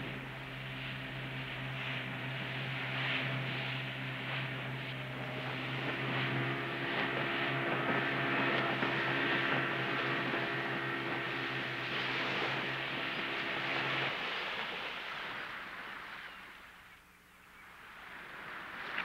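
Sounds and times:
water rushing past hull: 0:00.0 - 0:16.9
outboard motor drone: 0:00.0 - 0:19.0.

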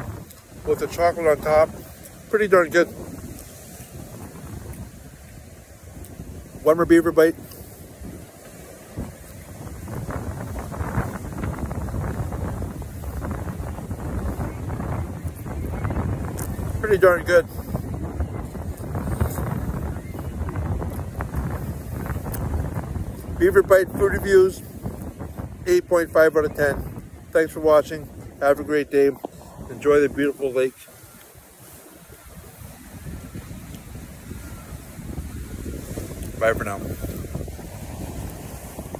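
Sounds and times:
waves on rocky shore: 0:00.0 - 0:38.9
wind buffeting microphone: 0:00.0 - 0:38.9.

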